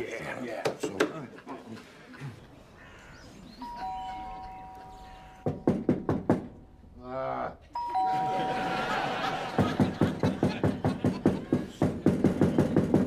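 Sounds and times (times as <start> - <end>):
electronic two-tone doorbell: 3.7 - 5.4, 7.8 - 9.6
loud knocks on door: 5.4 - 6.5.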